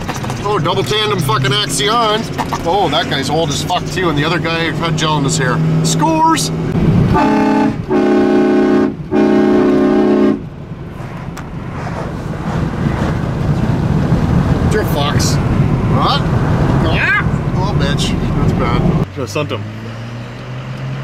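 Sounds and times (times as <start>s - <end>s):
truck engine and road noise: 0.0s - 21.0s
vehicle horn honking: 7.1s - 10.4s.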